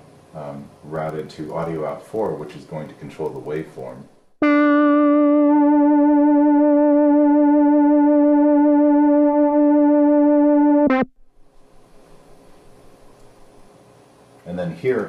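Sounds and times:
analog synth note held: 4.4 - 11.1.

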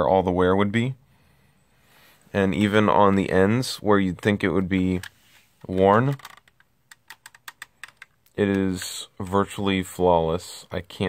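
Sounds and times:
plastic toy crossbow clicks and taps: 6.0 - 9.0.

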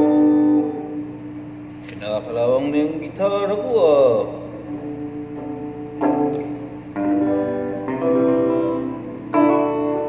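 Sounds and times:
guitar chord ringing: 0.0 - 1.6, 2.2 - 10.0.

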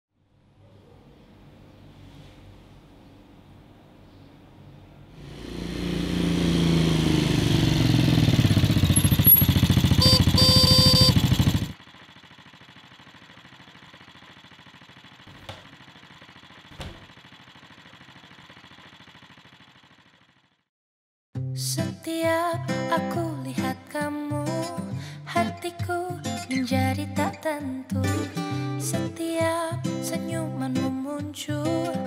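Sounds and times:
motorcycle engine: 5.1 - 20.7
horn beeps: 9.2 - 11.4.

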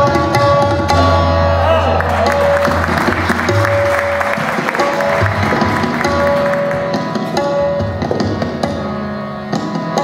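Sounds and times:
harmonium and tabla playing: 0.0 - 10.0
audience applauding: 1.7 - 7.3.

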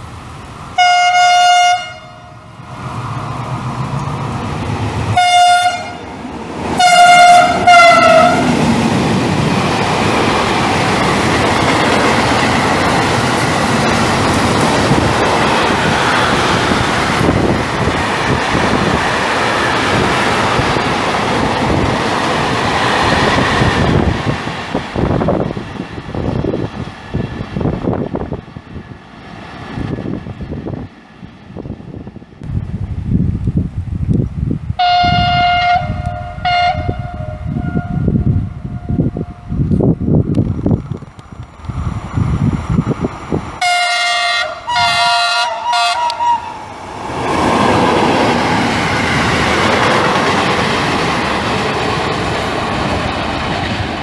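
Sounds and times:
train wagons rumbling past: 0.0 - 54.0
train horn blasts: 0.8 - 2.5, 5.2 - 6.1, 6.8 - 8.6, 34.8 - 39.5, 43.6 - 46.6.

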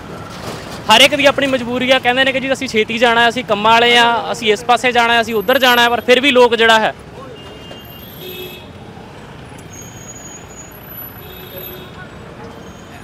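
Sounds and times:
road traffic noise: 0.0 - 13.0
vehicle horn toots: 7.3 - 8.7.

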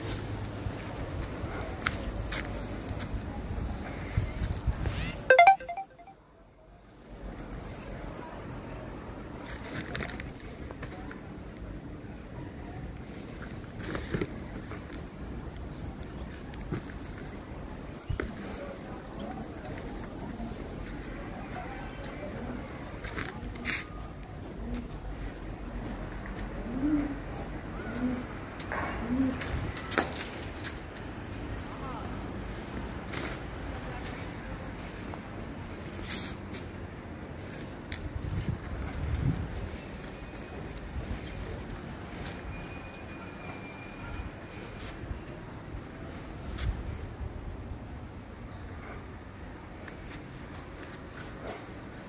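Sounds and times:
outdoor background noise: 0.0 - 52.0
electronic chime: 5.3 - 6.2.

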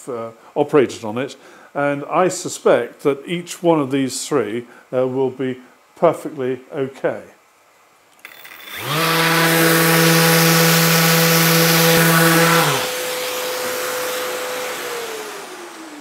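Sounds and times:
orbital sander sanding wood: 8.3 - 16.0.

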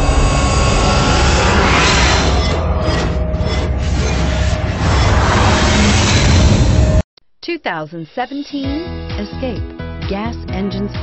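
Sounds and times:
deep rumbling whoosh: 0.0 - 7.0.

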